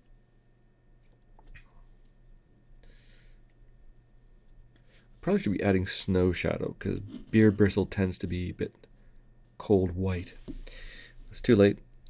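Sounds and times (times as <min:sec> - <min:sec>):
low steady hum: 0:00.0 - 0:12.0
paintbrush scratching on palette: 0:01.6 - 0:08.5.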